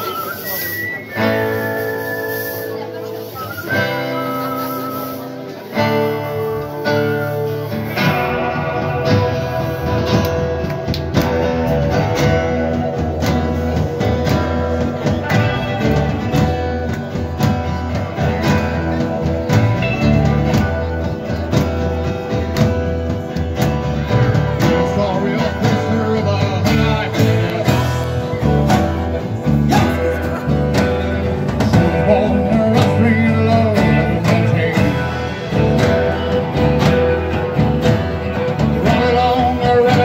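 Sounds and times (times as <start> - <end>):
guitars: 0.0 - 40.0
electric bass: 3.9 - 40.0.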